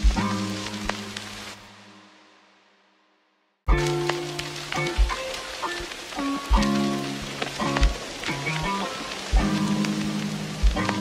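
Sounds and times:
deep thumping beat: 0.0 - 0.5, 4.8 - 5.3, 7.7 - 8.3, 9.3 - 9.7, 10.6 - 11.0
steady hiss: 0.0 - 2.8, 3.7 - 11.0.

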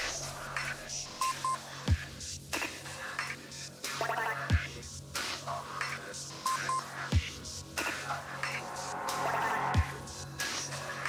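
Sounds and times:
electronic bass music: 6.5 - 10.5.

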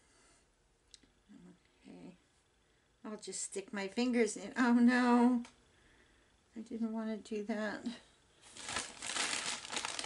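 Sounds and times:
crinkly material rustling: 8.4 - 10.0.

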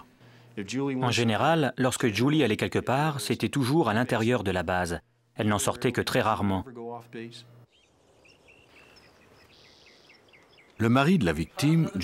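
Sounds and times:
small birds chirping: 6.2 - 12.0.

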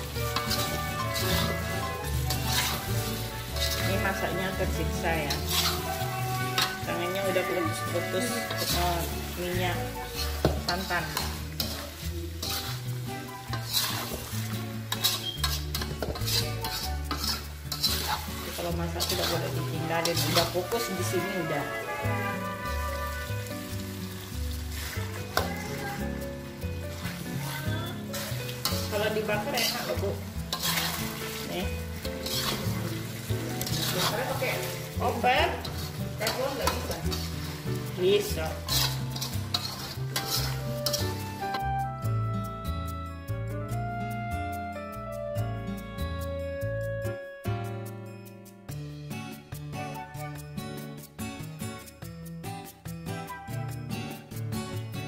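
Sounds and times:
spatula scraping a metal wok: 0.0 - 41.6
low sizzle of frying: 0.0 - 47.1, 48.6 - 55.0.

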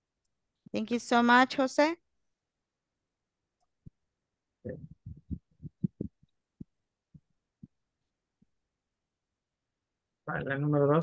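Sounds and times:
soft low thumps: 4.7 - 7.8.

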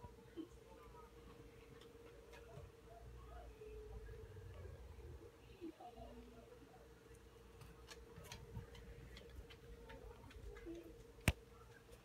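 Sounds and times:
faint steady hum: 0.0 - 12.0
light irregular ticks: 7.1 - 12.0.

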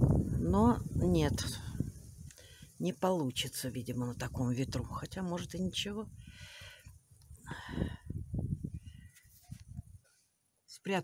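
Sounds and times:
wind buffeting microphone: 0.0 - 2.3, 7.5 - 10.0.

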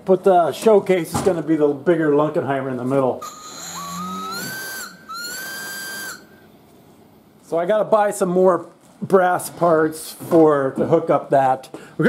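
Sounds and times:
high-pitched whistle blast: 3.2 - 6.5.

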